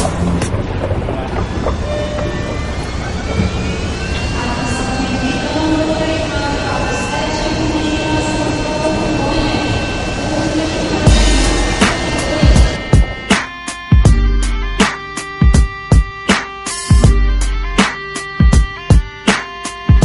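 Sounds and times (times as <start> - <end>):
steady rumble: 0.0 - 14.8
jet engines whining: 0.0 - 19.8.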